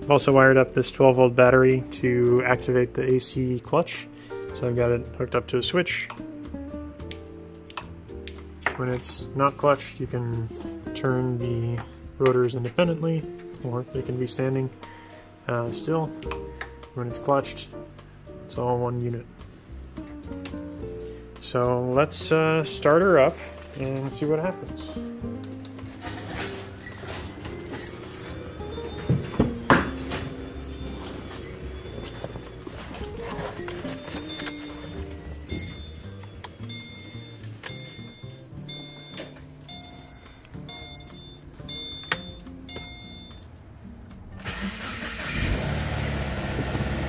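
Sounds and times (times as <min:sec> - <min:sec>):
background music: 0:00.0 - 0:47.0
car engine starting and idling: 0:26.0 - 0:43.4, 0:44.0 - 0:47.0.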